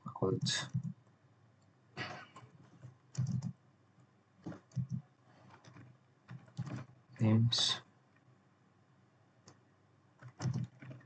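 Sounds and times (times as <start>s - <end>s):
computer keyboard typing: 0.4s - 1.0s, 2.8s - 3.6s, 4.4s - 6.9s, 10.2s - 11.0s.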